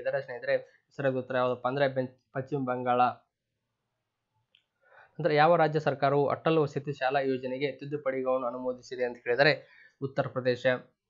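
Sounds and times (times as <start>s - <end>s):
man speaking: 0.0s - 3.3s, 5.2s - 10.9s.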